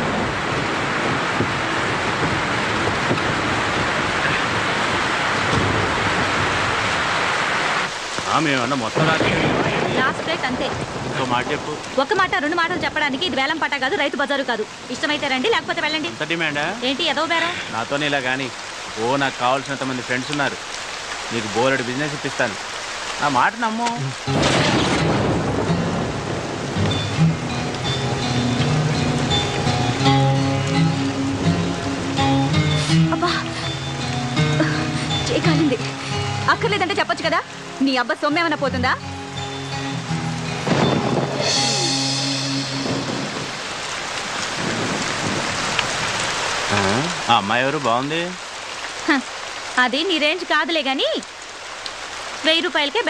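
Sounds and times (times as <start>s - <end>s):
rumbling thunder: 0.0s - 18.0s, 24.1s - 32.2s, 39.9s - 47.6s
rain falling: 0.0s - 53.0s
person speaking: 8.2s - 19.6s, 23.2s - 24.3s, 46.7s - 48.3s
background music with held notes: 25.1s - 43.6s.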